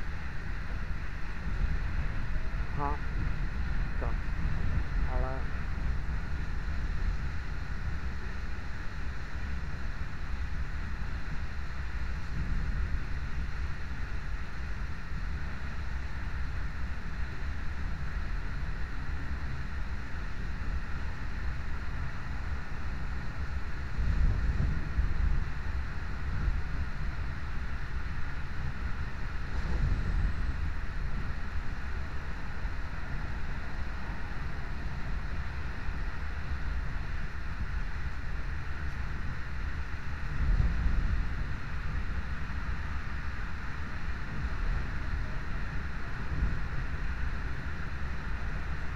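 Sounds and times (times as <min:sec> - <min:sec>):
rush of air: 0:29.2 - 0:35.0.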